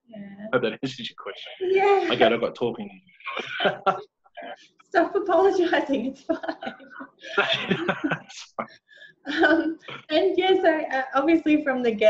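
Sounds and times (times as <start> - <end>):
person talking: 0.1 - 8.7, 9.3 - 12.0
brief vocal sound: 0.6 - 4.6.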